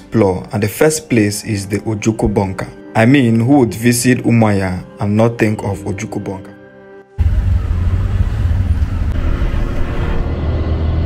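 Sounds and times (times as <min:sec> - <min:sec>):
street traffic and road noise: 0:07.2 - 0:11.0.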